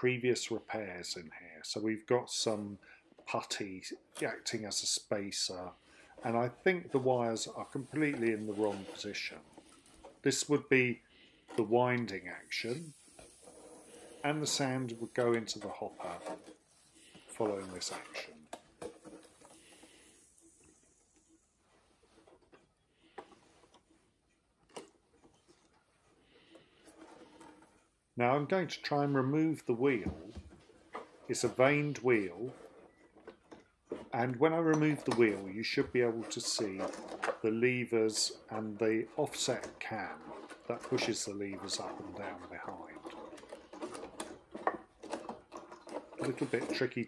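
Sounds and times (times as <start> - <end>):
soft clicks and rustles: 5.5 - 28.2, 29.8 - 47.0
small clicks and knocks: 42.7 - 46.8.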